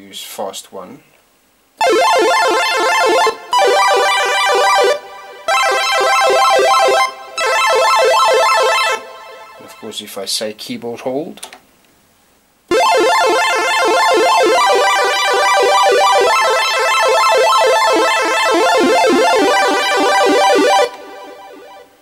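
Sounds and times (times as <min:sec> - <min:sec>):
chiptune synth arpeggio: 0:01.8 - 0:09.0, 0:12.7 - 0:22.0.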